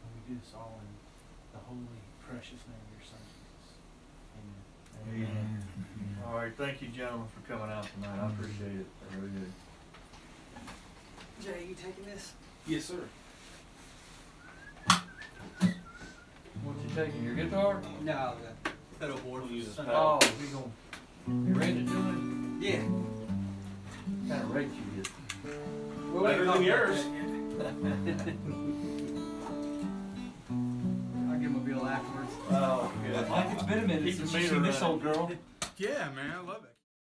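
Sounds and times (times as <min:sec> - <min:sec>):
guitar chords: 0:16.6 - 0:19.1, 0:21.2 - 0:35.2.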